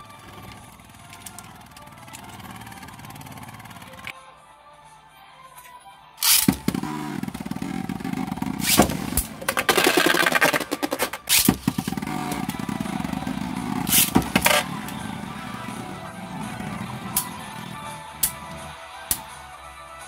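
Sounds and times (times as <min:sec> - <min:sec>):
spinning tops whirring and scraping: 0:00.0 - 0:04.1, 0:06.2 - 0:19.2
spinning tops clacking together: 0:08.6 - 0:11.8.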